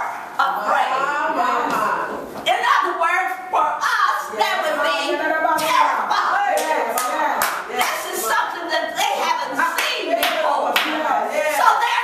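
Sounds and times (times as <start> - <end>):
woman talking: 0.0 - 12.0
hand clapping: 6.5 - 8.1, 9.7 - 11.0.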